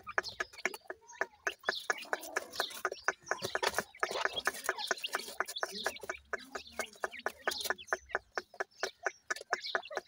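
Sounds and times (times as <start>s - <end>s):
chicks chirping: 0.0s - 10.0s
chicks clucking and pecking: 0.0s - 10.0s.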